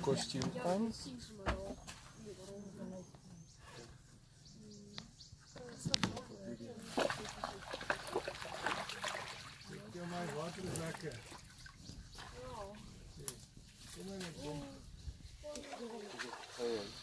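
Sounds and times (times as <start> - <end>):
people talking: 0.0 - 3.4, 4.6 - 7.8
mud and water sloshing: 6.7 - 14.4, 15.4 - 17.0.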